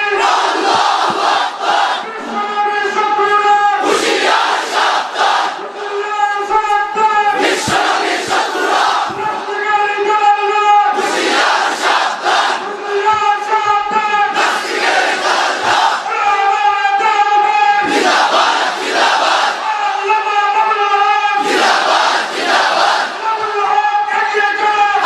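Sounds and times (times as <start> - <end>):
crowd shouting replies: 0.0 - 25.0.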